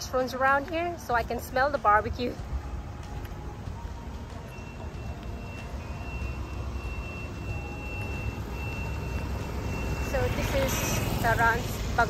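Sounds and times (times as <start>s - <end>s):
traffic rumble: 0.0s - 12.0s.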